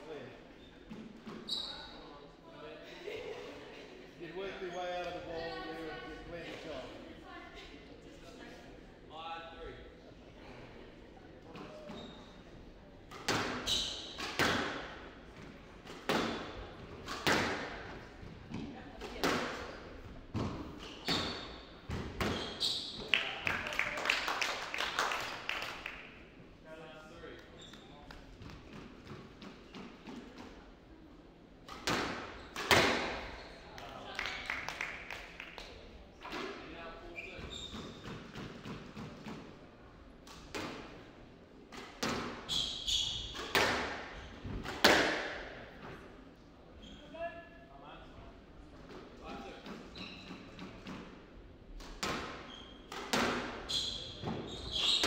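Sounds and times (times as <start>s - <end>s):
shoes squeaking on wooden floor: 0.6s - 2.1s, 20.4s - 23.1s, 37.1s - 38.4s, 53.6s - 55.0s
squash ball cracking off walls: 13.1s - 14.9s, 15.9s - 17.8s, 31.6s - 33.2s, 43.4s - 45.5s, 51.8s - 53.6s
squash ball cracks echoing: 31.6s - 33.2s, 43.4s - 45.6s.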